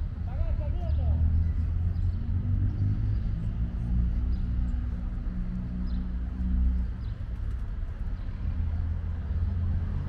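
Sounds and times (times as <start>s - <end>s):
low rumble of street traffic: 0.0s - 10.0s.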